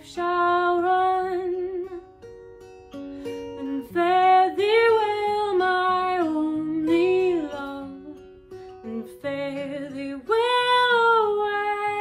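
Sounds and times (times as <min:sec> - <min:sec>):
woman singing: 0:00.0 - 0:02.2, 0:03.4 - 0:12.0
acoustic guitar picking: 0:00.0 - 0:12.0.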